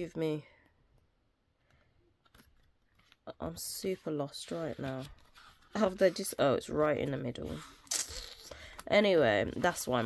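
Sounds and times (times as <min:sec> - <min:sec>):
handling cards: 0:02.2 - 0:10.0.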